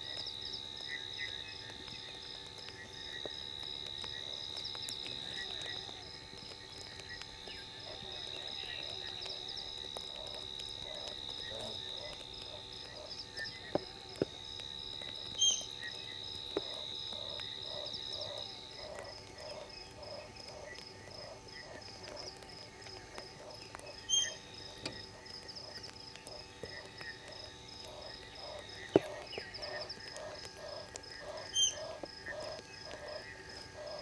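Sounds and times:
frog calling: 0:00.0 - 0:34.0
insect trill: 0:00.0 - 0:34.0.

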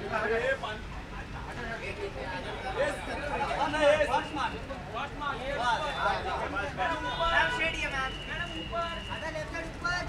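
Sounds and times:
people chattering and calling out: 0:00.0 - 0:10.0.

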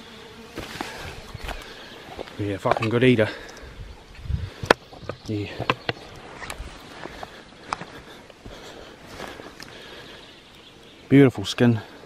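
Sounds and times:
footsteps in vegetation: 0:00.0 - 0:10.8
camera handling rustle: 0:04.6 - 0:07.9.

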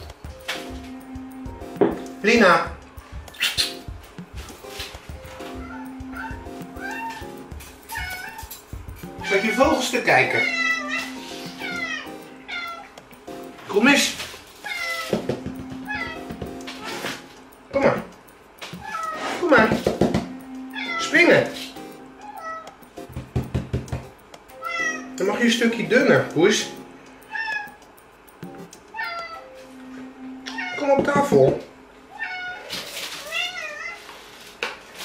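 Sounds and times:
cat meowing: 0:05.4 - 0:08.5, 0:09.2 - 0:13.0, 0:14.6 - 0:16.9, 0:18.8 - 0:19.4, 0:20.7 - 0:21.2, 0:22.2 - 0:22.7, 0:24.6 - 0:25.2, 0:27.3 - 0:27.8, 0:28.9 - 0:29.4, 0:30.5 - 0:31.0, 0:32.1 - 0:34.1.

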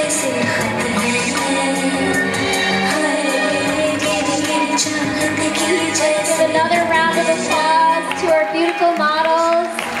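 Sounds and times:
person singing over music: 0:00.0 - 0:08.4.

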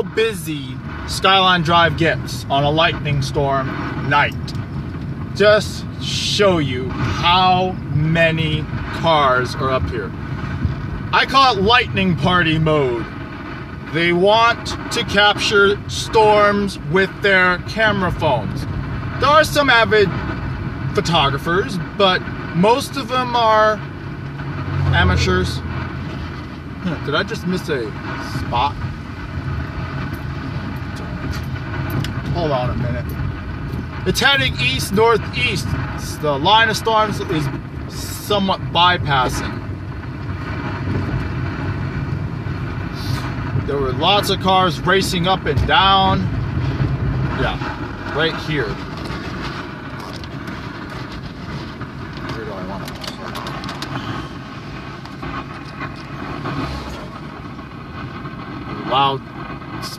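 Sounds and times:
car engine and road rumble: 0:00.0 - 0:59.9.

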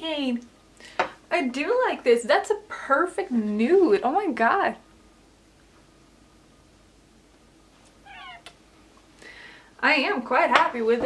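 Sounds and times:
high-pitched vocal squeak: 0:08.1 - 0:08.5.

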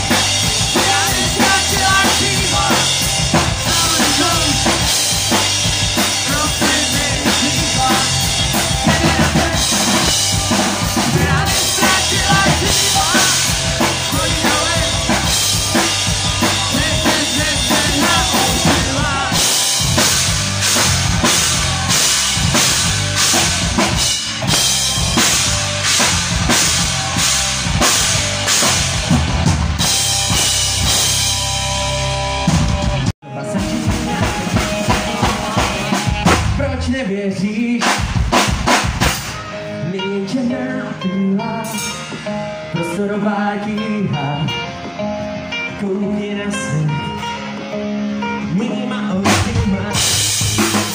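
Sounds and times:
drum kit beat: 0:00.0 - 0:37.0, 0:37.7 - 0:39.7, 0:49.1 - 0:50.9
electric guitars: 0:00.0 - 0:37.5, 0:38.6 - 0:50.9
person singing into microphone: 0:00.5 - 0:05.0, 0:06.0 - 0:19.8, 0:33.3 - 0:38.0, 0:39.6 - 0:44.8, 0:45.6 - 0:47.7, 0:48.4 - 0:50.6.

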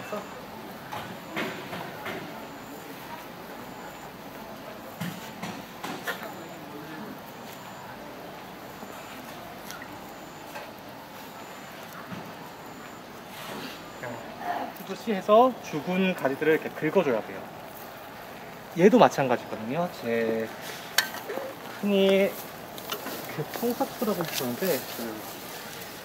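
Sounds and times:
dry grass leaves rustling: 0:14.7 - 0:26.0.

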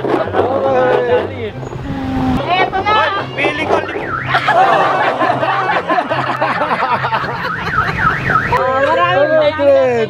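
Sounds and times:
people talking: 0:00.3 - 0:06.7.

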